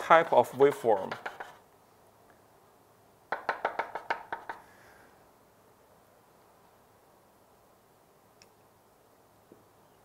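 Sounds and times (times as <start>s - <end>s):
chalk tapping on blackboard: 0.0s - 1.6s, 3.3s - 4.7s.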